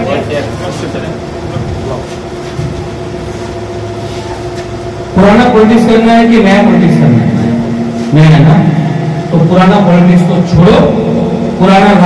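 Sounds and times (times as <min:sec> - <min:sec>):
electrical hum: 0:00.0 - 0:12.0
rumbling background noise: 0:00.0 - 0:12.0.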